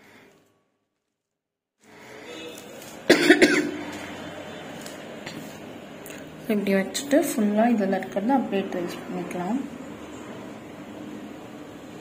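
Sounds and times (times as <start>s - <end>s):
person coughing: 3.1s - 3.8s.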